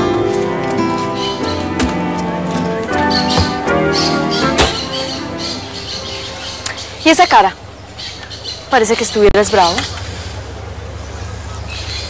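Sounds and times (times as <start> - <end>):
vehicle low rumble: 0.0 - 12.0.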